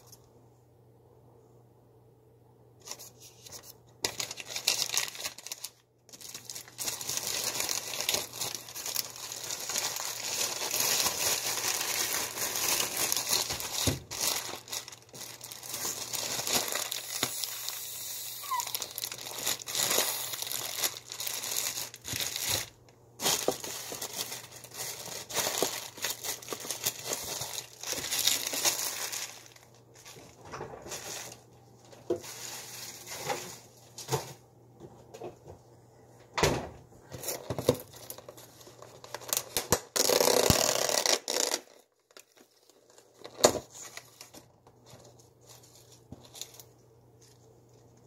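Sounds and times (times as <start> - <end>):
plastic and paper crinkling: 2.8 - 34.4, 37.1 - 48.0.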